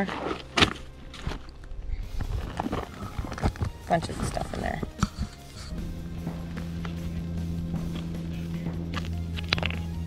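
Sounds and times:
quiet background music: 0.0 - 10.0
rocks clicking together: 8.9 - 10.0.

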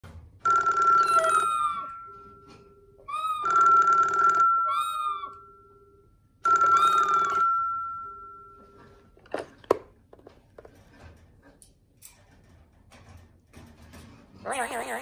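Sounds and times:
telephone ringing: 0.4 - 9.2.

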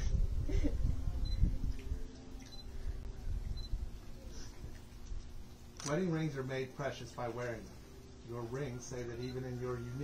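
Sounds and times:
low rumbling microphone noise: 0.0 - 5.7.

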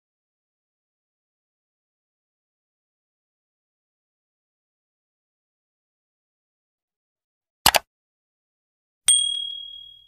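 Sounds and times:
notification bell ding: 9.1 - 10.0.

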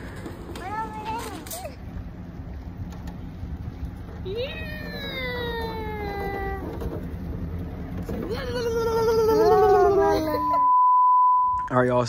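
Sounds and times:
steady low hum: 0.0 - 12.0
toddler vocalizing: 8.3 - 10.6
test-tone beep: 10.5 - 11.7.

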